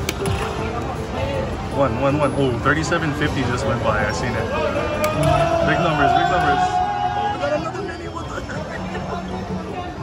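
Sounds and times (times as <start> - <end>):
casino background noise: 0.0 - 10.0.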